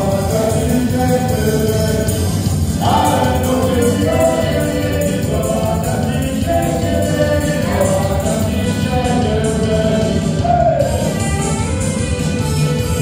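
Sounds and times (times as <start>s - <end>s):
accordion melody: 0.0s - 13.0s
drums keeping dance beat: 0.0s - 13.0s
guitar: 0.0s - 13.0s.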